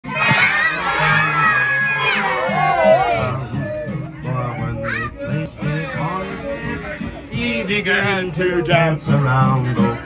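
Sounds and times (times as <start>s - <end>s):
children shouting and singing: 0.0s - 10.0s.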